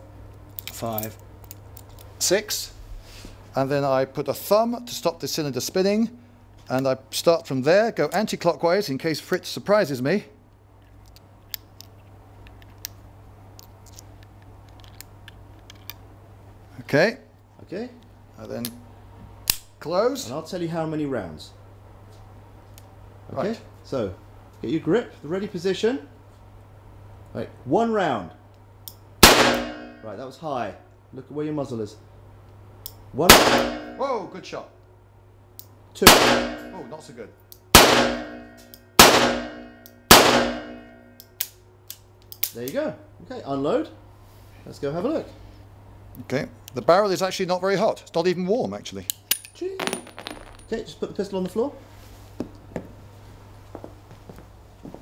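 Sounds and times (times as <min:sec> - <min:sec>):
steady low hum: 0:00.0 - 0:55.0
revolver shots echoing: 0:29.2 - 0:30.1, 0:33.3 - 0:34.1, 0:36.0 - 0:36.9, 0:37.8 - 0:41.0.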